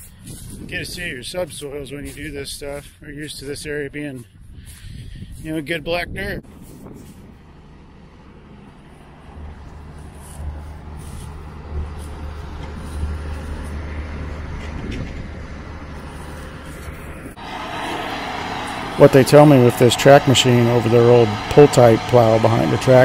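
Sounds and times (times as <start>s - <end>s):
diesel engine rumbling: 0.0s - 23.0s.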